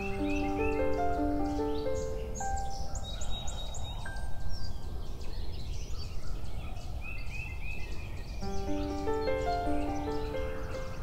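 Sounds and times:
gentle music: 0.0s - 11.0s
outdoor background hiss: 0.0s - 11.0s
small birds chirping: 0.0s - 11.0s.

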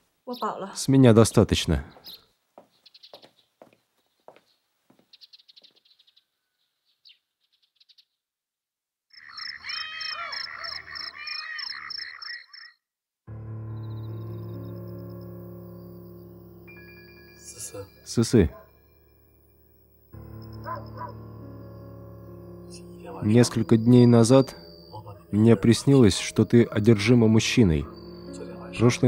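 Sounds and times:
frogs calling: 9.1s - 12.8s, 13.8s - 29.0s
low sustained music drone: 13.3s - 29.0s.

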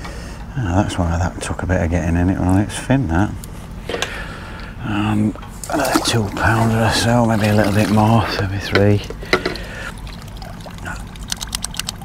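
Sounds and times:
water trickling and dripping: 5.6s - 12.0s.

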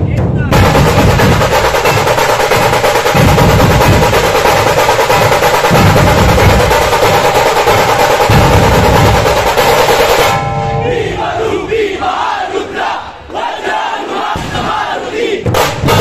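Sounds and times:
loud drum ensemble playing: 0.0s - 10.4s, 11.0s - 16.0s
crowd shouting: 10.3s - 16.0s.

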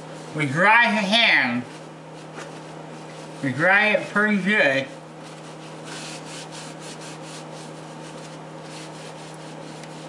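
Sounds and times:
steady low hum: 0.0s - 10.0s
hands rubbing paper towel: 1.7s - 3.5s, 5.2s - 10.0s.

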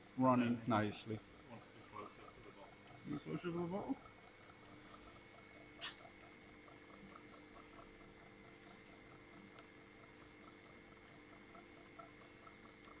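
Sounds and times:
labelling machine humming and ticking: 0.0s - 13.0s.

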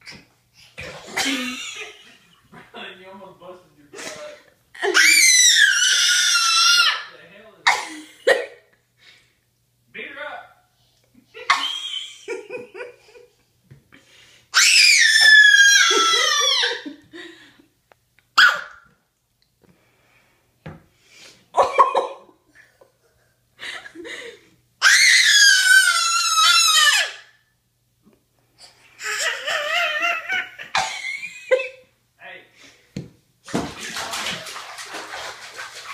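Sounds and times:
toddler squealing laughter: 4.8s - 7.1s, 11.5s - 12.1s, 14.6s - 17.0s, 24.8s - 27.2s, 29.0s - 30.8s
toddler yelps and giggles: 4.8s - 7.1s, 14.6s - 17.0s, 24.8s - 27.3s, 29.0s - 30.7s.

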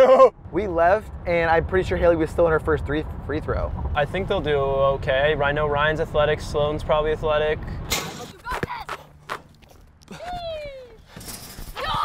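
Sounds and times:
person shouting go: 11.8s - 12.0s.

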